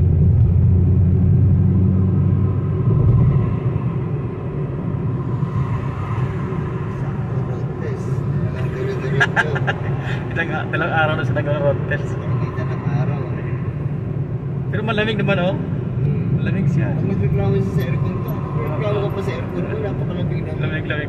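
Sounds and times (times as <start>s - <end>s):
car cabin road rumble: 0.0s - 21.0s.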